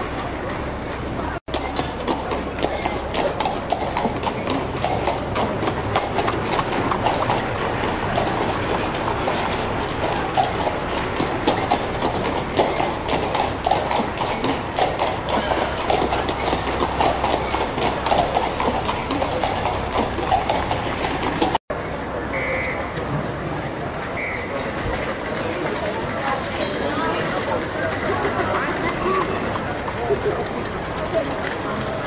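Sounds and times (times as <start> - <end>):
wagon wheels rattling: 0.4 - 32.0
horse hooves clip-clopping on pavement: 1.5 - 21.9, 22.6 - 32.0.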